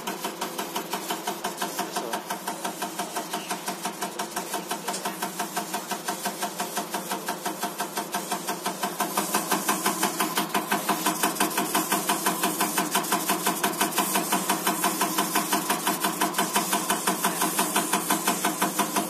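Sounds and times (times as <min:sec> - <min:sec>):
injector rapid ticking: 0:00.0 - 0:19.0.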